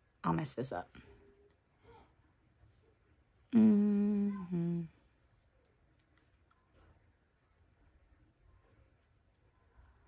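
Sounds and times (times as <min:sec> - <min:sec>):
woman humming: 0:03.5 - 0:05.0.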